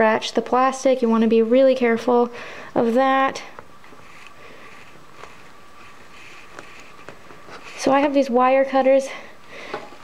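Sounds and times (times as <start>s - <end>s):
room hiss: 0.8s - 10.0s.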